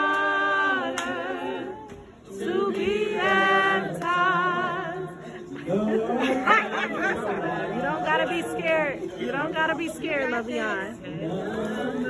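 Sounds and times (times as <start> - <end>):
group singing a cappella: 0.0 - 12.0.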